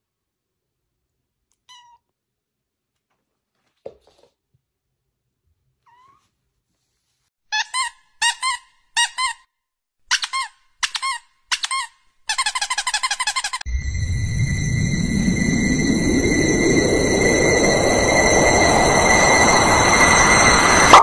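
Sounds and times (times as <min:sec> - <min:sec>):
squeaky toy squeaking: 0:07.5 - 0:09.4, 0:10.1 - 0:13.7.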